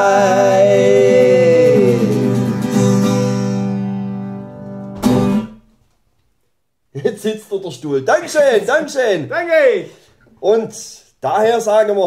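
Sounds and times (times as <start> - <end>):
acoustic guitar strumming: 0.0 - 5.8.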